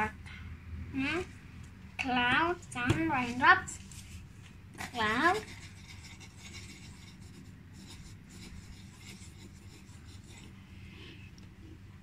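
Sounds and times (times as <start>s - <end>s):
pencil scratching on paper: 4.8s - 10.6s.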